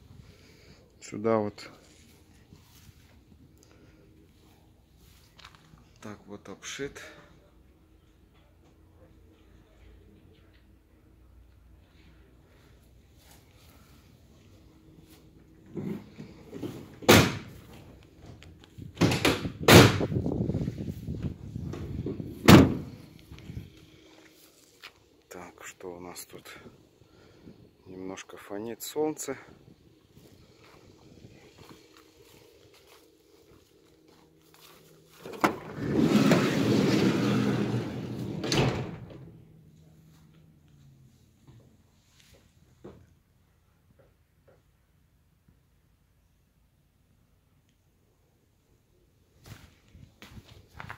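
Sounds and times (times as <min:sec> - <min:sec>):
van doors slamming: 0:16.8 - 0:17.6, 0:22.1 - 0:23.0
doors rattling: 0:21.7 - 0:23.0, 0:35.2 - 0:39.4.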